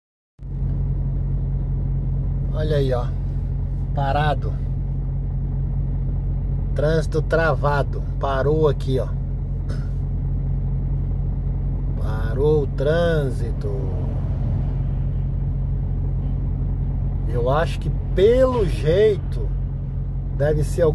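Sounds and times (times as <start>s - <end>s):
road rumble: 0.4s - 20.9s
truck engine rumble: 0.4s - 20.9s.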